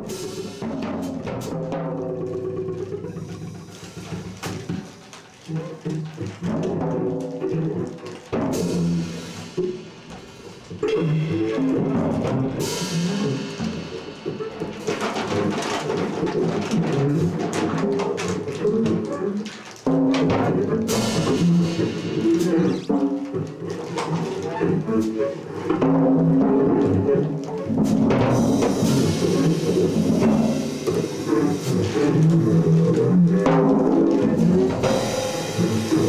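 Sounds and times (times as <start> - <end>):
drum kit hits: 0.0 - 5.1, 8.3 - 18.2, 19.8 - 23.8, 27.7 - 36.0
live jazz band playing: 0.0 - 25.6, 26.8 - 36.0
low instrument notes: 0.0 - 36.0.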